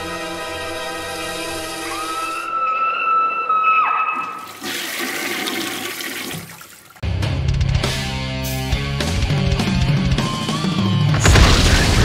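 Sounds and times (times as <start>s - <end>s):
toilet flushing: 4.2s - 7.0s.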